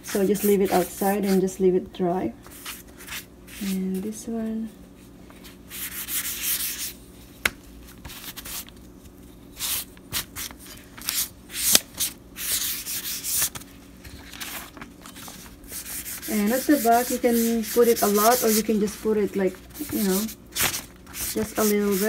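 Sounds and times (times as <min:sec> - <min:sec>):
rubbing strokes across paper: 0:00.0 - 0:01.4, 0:15.2 - 0:22.0.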